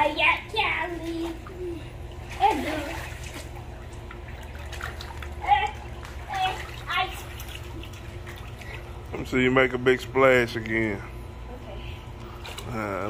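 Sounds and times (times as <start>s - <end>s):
pool water splashing: 0.0s - 10.8s, 12.2s - 13.0s
steady low hum: 0.0s - 13.0s.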